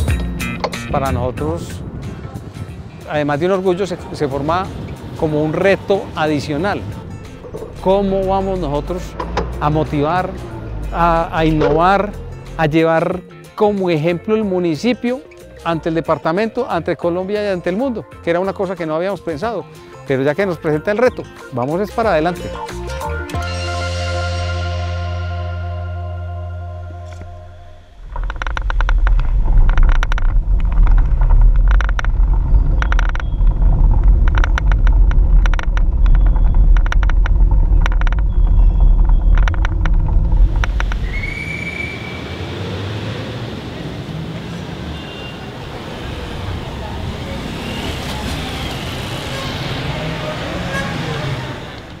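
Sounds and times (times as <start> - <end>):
heavy wind rumble: 0.0 - 13.0, 27.7 - 44.9
road traffic: 0.0 - 18.3, 18.9 - 52.0
camera rattling knocks: 28.0 - 41.0.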